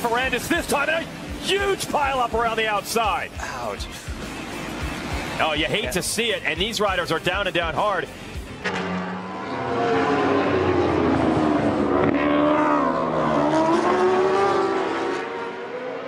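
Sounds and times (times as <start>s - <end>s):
racing motorcycle engines revving: 8.4s - 16.0s.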